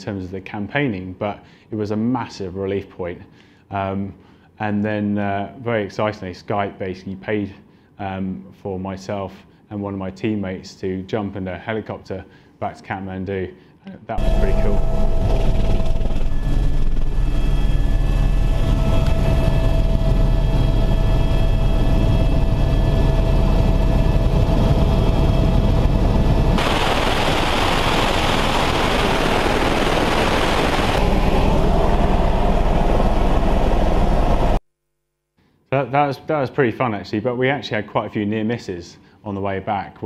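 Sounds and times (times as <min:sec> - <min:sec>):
thin whine tones: 0:14.1 - 0:35.4
helicopter rotor and engine drone: 0:14.2 - 0:34.6.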